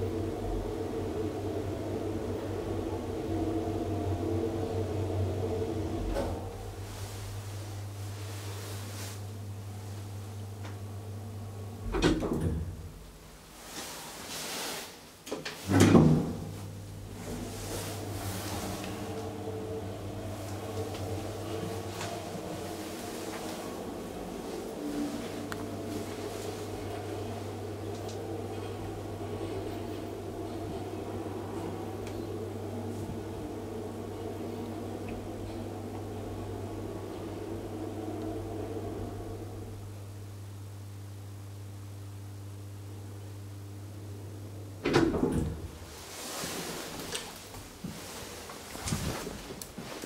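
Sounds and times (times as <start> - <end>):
elevator starting clunk: 0.0 - 6.9, 11.8 - 13.0, 15.5 - 39.9, 44.8 - 45.9
elevator machinery hum: 0.0 - 50.0.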